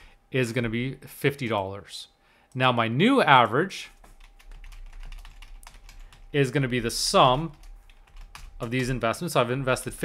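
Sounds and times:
typing on computer keyboard: 4.0 - 9.1.

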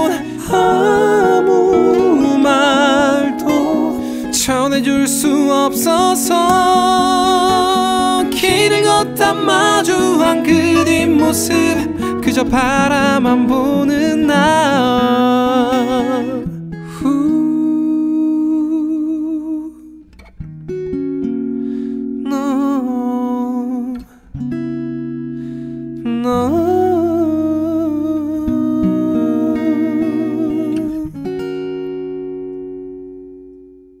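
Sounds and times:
person singing with vibrato: 0.0 - 20.0, 22.2 - 24.2, 26.0 - 31.2
acoustic guitar ringing: 0.0 - 34.0.

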